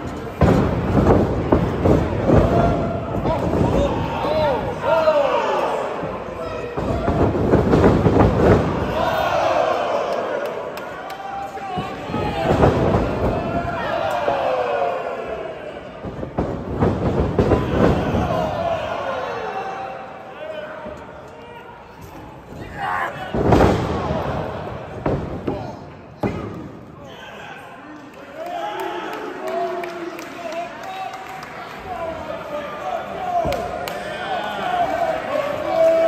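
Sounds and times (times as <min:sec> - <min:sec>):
crowd shouting and yelling: 0:00.0 - 0:36.0.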